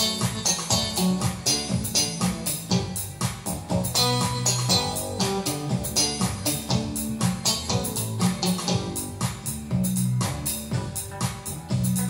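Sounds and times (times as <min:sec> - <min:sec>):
rhythm accompaniment beat: 0:00.0 - 0:12.0.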